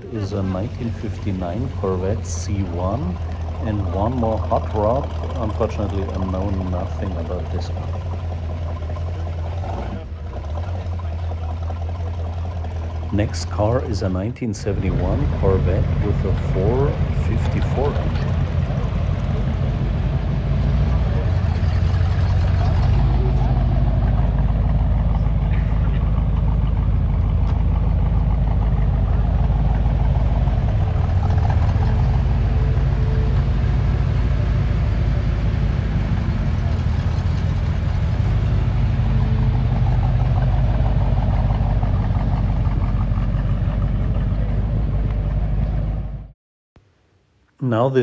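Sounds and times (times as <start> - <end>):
car engine idling: 0.0 - 47.1.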